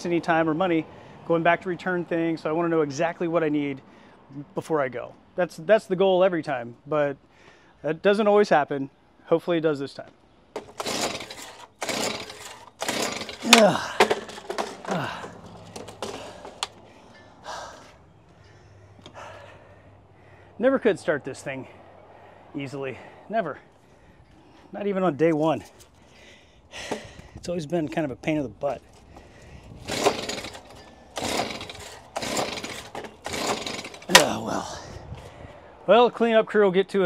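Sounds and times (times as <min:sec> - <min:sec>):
clicks and rattles: 0:10.6 - 0:16.8, 0:29.8 - 0:34.3
recoil cord whirring: 0:10.6 - 0:16.8, 0:29.8 - 0:34.4.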